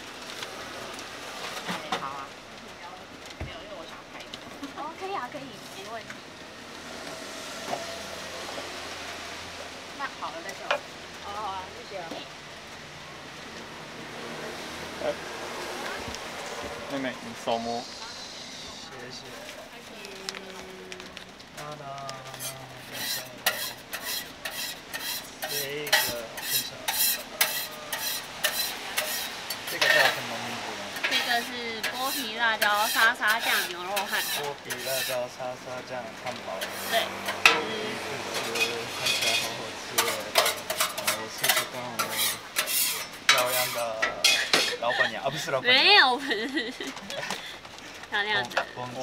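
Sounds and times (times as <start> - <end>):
food sizzling on a griddle: 0.0 - 49.0
vehicle passing: 5.9 - 19.5, 35.4 - 42.5
utensil scraping: 22.2 - 35.3, 36.2 - 45.5.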